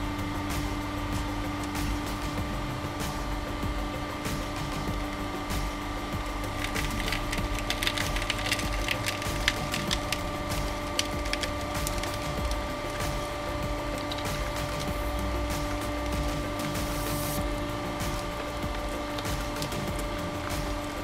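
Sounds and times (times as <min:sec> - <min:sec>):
hydraulic press humming: 0:00.0 - 0:21.0
leaves crackling and snapping: 0:06.6 - 0:13.3.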